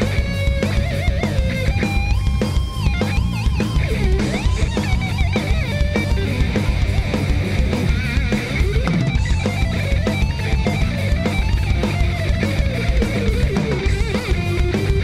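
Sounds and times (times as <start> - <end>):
distorted electric guitar solo: 0.0 - 15.0
heavy metal band playing: 0.0 - 15.0.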